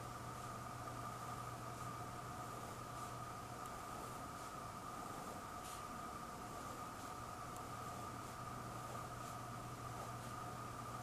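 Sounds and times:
steady hiss and hum: 0:00.0 - 0:11.0
pen scratching on paper: 0:07.8 - 0:10.5.

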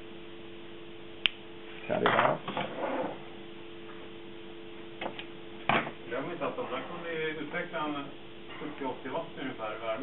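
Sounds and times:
electrical hum: 0:00.0 - 0:10.0
sharp snap: 0:01.2 - 0:01.4.

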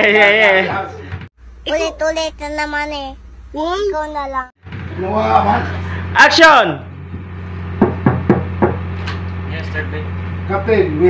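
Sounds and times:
steady low hum: 0:00.0 - 0:11.0
fist knocking on door: 0:07.8 - 0:08.9.

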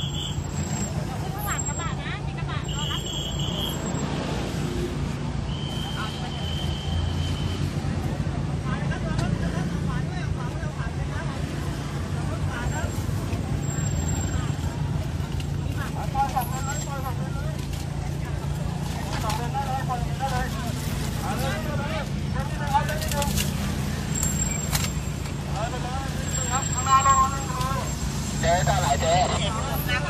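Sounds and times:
voices of people outside: 0:00.0 - 0:30.0.

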